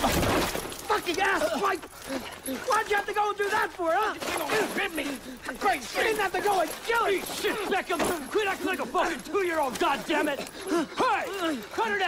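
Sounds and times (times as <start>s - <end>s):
strained vocal cries: 1.1s - 12.0s.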